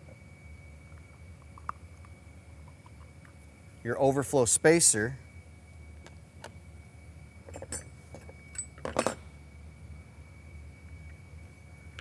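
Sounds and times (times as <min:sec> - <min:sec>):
small metal parts clinking: 0:07.5 - 0:09.2.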